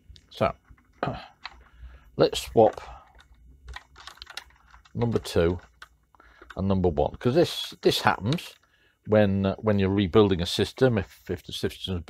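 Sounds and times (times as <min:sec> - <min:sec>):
plastic and metal clicks: 0:02.4 - 0:08.7.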